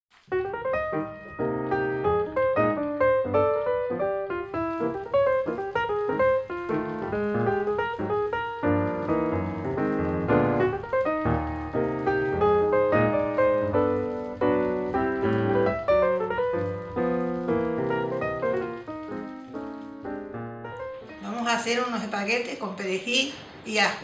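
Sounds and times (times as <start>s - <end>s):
background piano music: 0.1s - 23.7s.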